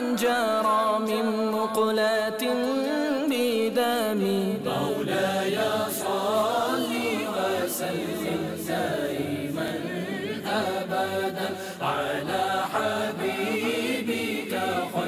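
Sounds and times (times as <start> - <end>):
voices chanting a devotional hymn: 0.0 - 15.0.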